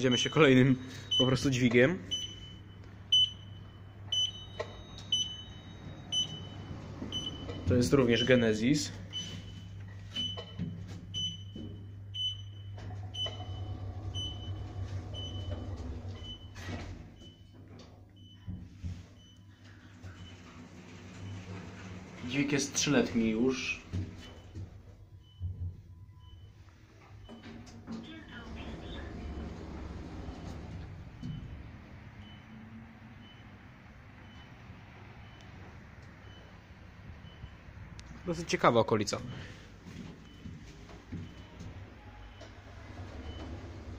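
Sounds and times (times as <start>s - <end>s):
sliding doors whoosh: 6.0s - 8.0s, 13.0s - 17.0s, 20.2s - 22.5s, 28.3s - 32.0s, 42.4s - 43.9s
low steady lift hum: 28.0s - 33.5s.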